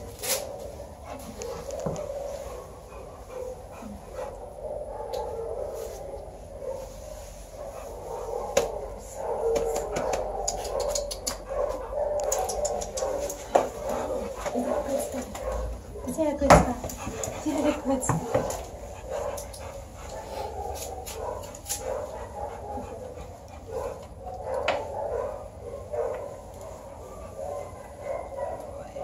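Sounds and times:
dog panting: 0:00.0 - 0:29.0.

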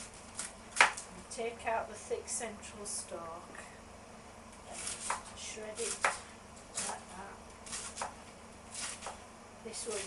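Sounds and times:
knife cutting cabbage on board: 0:00.0 - 0:01.1, 0:04.7 - 0:09.2, 0:09.8 - 0:10.0.

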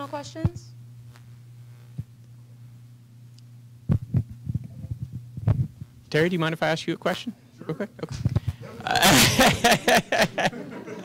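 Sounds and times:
microphone handling thumps: 0:00.0 - 0:02.2, 0:03.8 - 0:06.1
low hum: 0:00.0 - 0:06.1.

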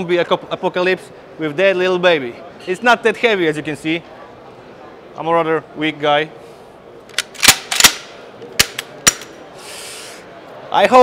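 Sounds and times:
shotgun handling clicks: 0:07.1 - 0:09.4
short hiss: 0:09.6 - 0:10.3.

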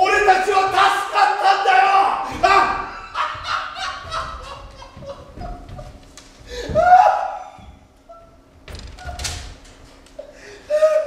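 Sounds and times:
man giving excited cries: 0:00.0 - 0:07.6
footfalls on stage floor: 0:02.4 - 0:07.0.

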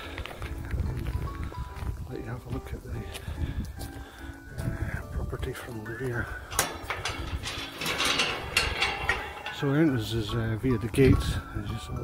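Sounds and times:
gate hinges scraping rattle: 0:06.0 - 0:11.5
metal gate latch clicks: 0:06.4 - 0:11.2.

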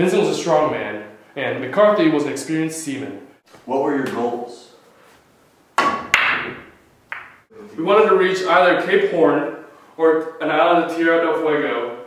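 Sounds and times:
billiard balls clacking: 0:05.8 - 0:07.5
billiard balls scattering: 0:05.8 - 0:07.5.

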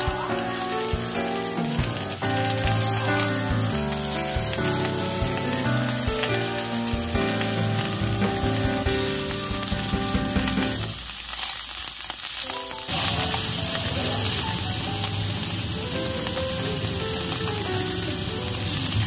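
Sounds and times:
music playing: 0:00.0 - 0:11.0
beef sizzling in a frying pan: 0:00.0 - 0:19.0.

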